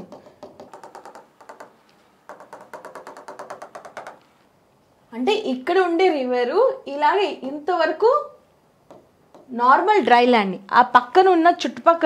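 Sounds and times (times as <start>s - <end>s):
stylus tapping on a screen: 0.0s - 4.3s, 8.9s - 9.5s.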